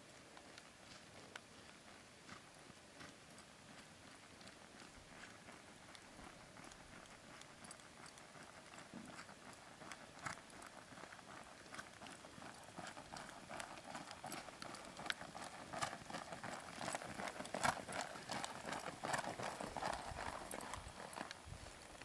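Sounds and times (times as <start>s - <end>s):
horse hoofbeats on dirt: 0.0s - 22.0s.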